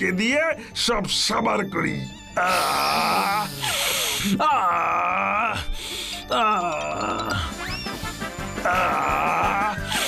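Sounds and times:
background music: 0:00.0 - 0:10.0
cartoon voice moaning: 0:02.4 - 0:03.6, 0:08.6 - 0:10.0.

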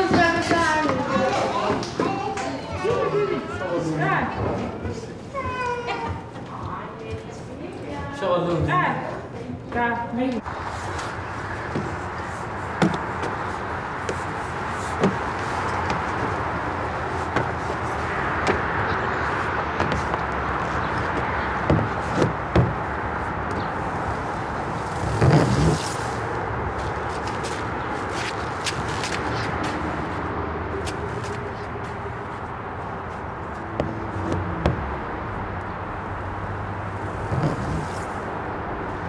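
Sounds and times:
child climbing on climbing frame: 0:00.0 - 0:07.4, 0:10.4 - 0:30.2, 0:30.8 - 0:35.0, 0:37.0 - 0:38.2
traffic hum: 0:00.0 - 0:39.0
child sliding down plastic slide: 0:25.0 - 0:26.2.

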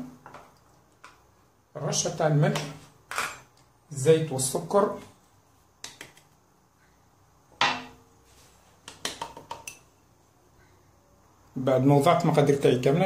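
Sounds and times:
glassware knocking and clinking: 0:07.6 - 0:08.0.

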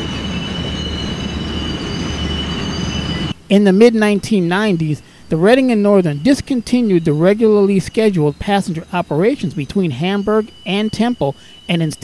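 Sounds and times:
high-pitched wheel squeal: 0:00.0 - 0:03.4, 0:04.6 - 0:12.0
freight train low rumble: 0:00.0 - 0:12.0.

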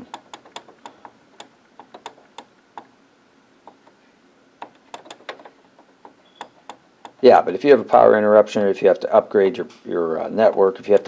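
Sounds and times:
printer keys clicking: 0:04.6 - 0:07.2.

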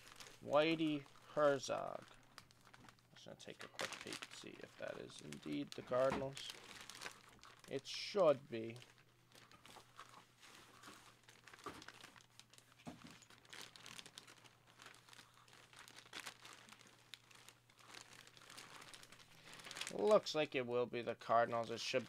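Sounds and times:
plastic bag crinkling: 0:00.0 - 0:07.8, 0:08.6 - 0:20.3.

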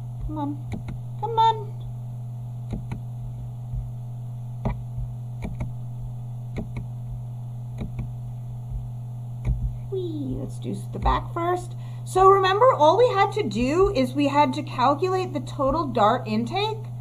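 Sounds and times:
low electrical hum: 0:00.0 - 0:17.0
computer mouse clicks: 0:05.4 - 0:05.7, 0:06.5 - 0:06.9, 0:07.8 - 0:08.1.

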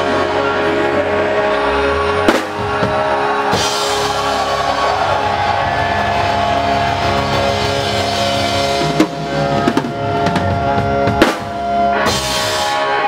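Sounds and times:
rock band playing live: 0:00.0 - 0:13.0
sharp drum hits: 0:02.3 - 0:03.0.

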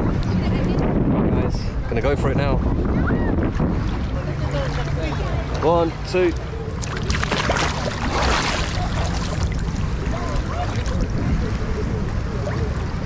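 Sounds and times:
wind rumbling on microphone: 0:00.0 - 0:13.0
water movement: 0:01.7 - 0:13.0
water splash: 0:03.8 - 0:11.6.

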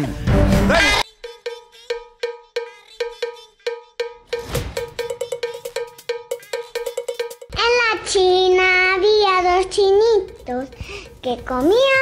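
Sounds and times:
cowbell-like strikes: 0:01.4 - 0:07.6.

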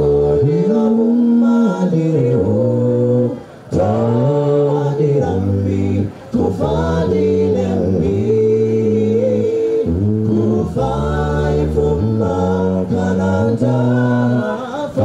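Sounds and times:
male a cappella group singing: 0:00.0 - 0:15.0.

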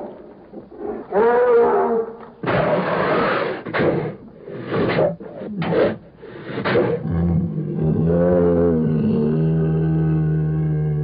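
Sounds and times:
bear roaring: 0:06.9 - 0:11.0.

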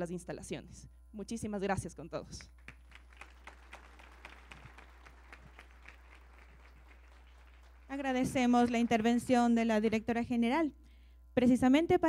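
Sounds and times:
faint audience applause: 0:02.6 - 0:09.2.

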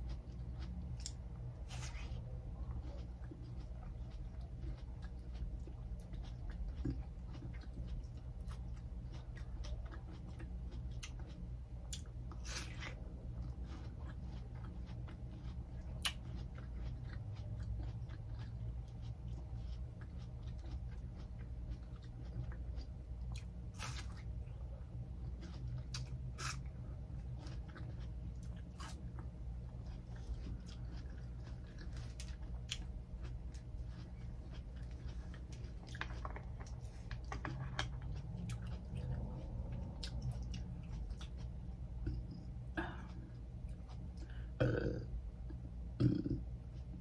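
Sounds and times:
chewing watermelon: 0:00.0 - 0:47.0
steady low hum: 0:00.0 - 0:47.0.

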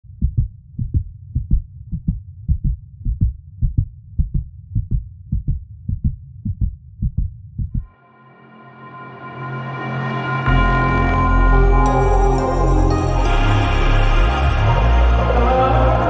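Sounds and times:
heartbeat thumps: 0:00.0 - 0:07.9.

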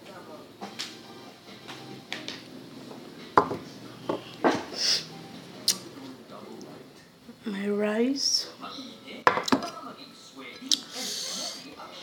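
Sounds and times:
cutlery knocking on plate: 0:03.4 - 0:04.7, 0:09.3 - 0:09.8.

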